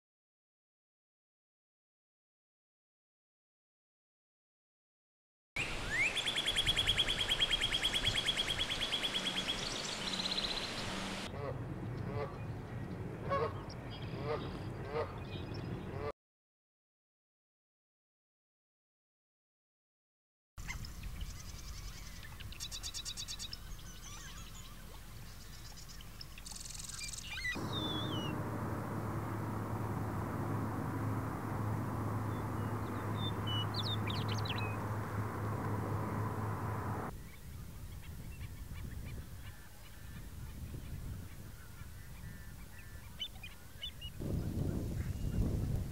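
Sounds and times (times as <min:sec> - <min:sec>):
bird singing trills: 0:05.6 - 0:11.3, 0:20.7 - 0:30.1, 0:31.6 - 0:36.3
steady low hum: 0:27.6 - 0:37.1.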